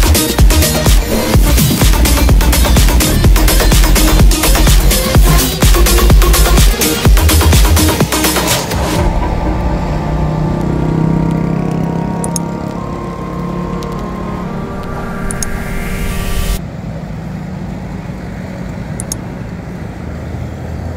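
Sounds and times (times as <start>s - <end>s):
electronic music with held chords: 0.0s - 16.6s
road traffic passing: 0.0s - 20.9s.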